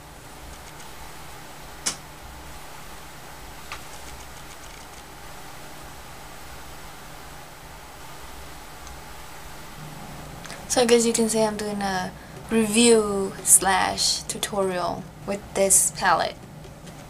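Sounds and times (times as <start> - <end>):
low background hum: 0.0 - 17.0
small sharp clicks: 1.8 - 2.0.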